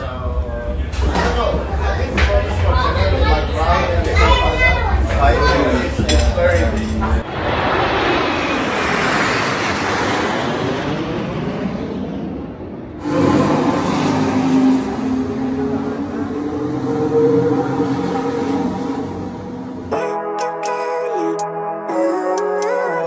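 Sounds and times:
jet aircraft roar: 0:00.0 - 0:20.0.

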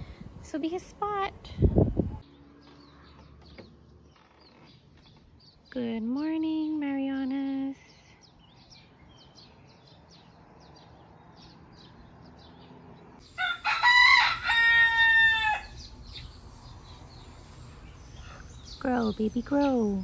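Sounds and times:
small birds chirping: 0:00.4 - 0:20.0
rooster crowing: 0:13.2 - 0:15.9.

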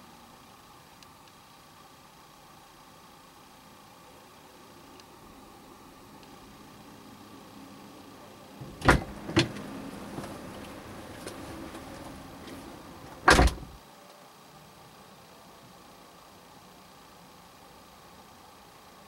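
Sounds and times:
quiet movement in car: 0:00.0 - 0:19.0
car door shutting: 0:08.6 - 0:13.8.

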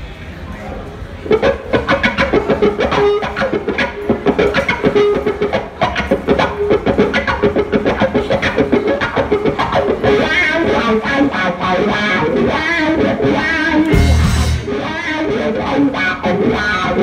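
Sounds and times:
held electric guitar notes: 0:01.3 - 0:17.0
live rock band playing: 0:01.3 - 0:17.0
driving drum beat: 0:13.9 - 0:14.8.

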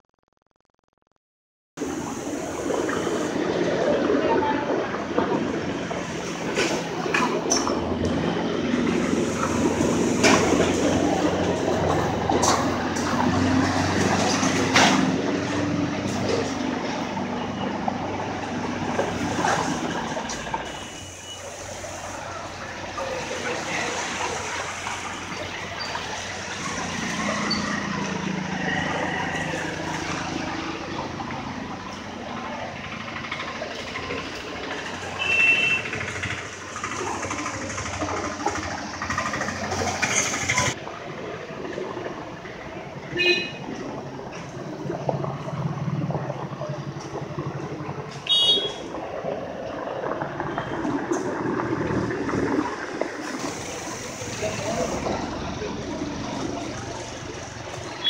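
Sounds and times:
passing traffic: 0:01.8 - 0:58.0
vehicle horn toots: 0:35.2 - 0:36.0, 0:43.1 - 0:43.6, 0:48.3 - 0:48.8.

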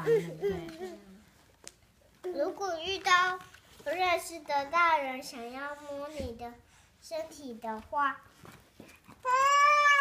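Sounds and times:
girl reading aloud: 0:02.2 - 0:08.5.

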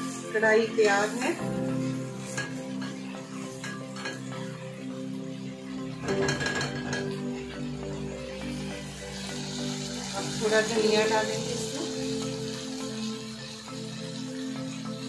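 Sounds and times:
background music with held tones: 0:00.0 - 0:15.0
spatula scraping a pan: 0:01.4 - 0:04.8, 0:05.7 - 0:10.4.

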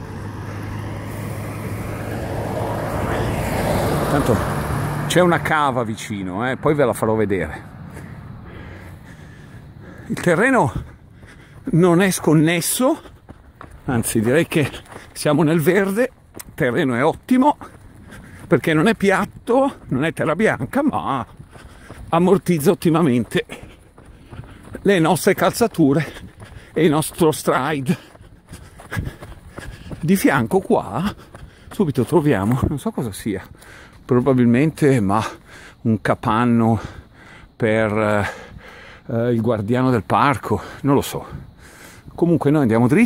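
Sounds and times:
footsteps on soft dirt path: 0:00.0 - 0:43.0
steady outdoor hiss: 0:00.0 - 0:43.0
person breathing while walking: 0:07.6 - 0:15.2, 0:17.6 - 0:18.7, 0:21.2 - 0:22.6, 0:23.2 - 0:31.9, 0:33.4 - 0:34.1, 0:35.2 - 0:35.8, 0:36.7 - 0:37.6, 0:38.2 - 0:39.1, 0:40.5 - 0:42.2.

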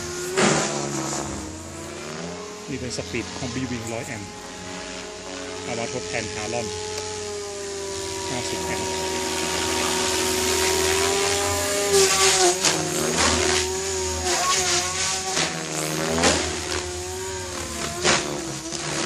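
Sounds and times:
rotor blade whooshes: 0:00.0 - 0:03.1, 0:09.0 - 0:19.0
rc helicopter rotor whine: 0:00.0 - 0:19.0.

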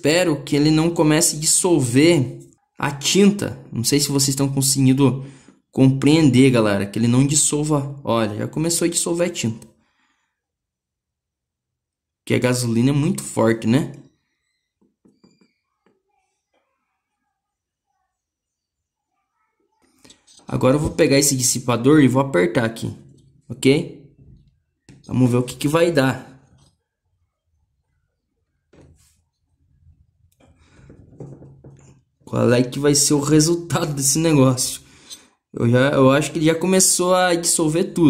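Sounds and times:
faint rubbing and scraping: 0:19.6 - 0:21.7, 0:27.7 - 0:32.2.

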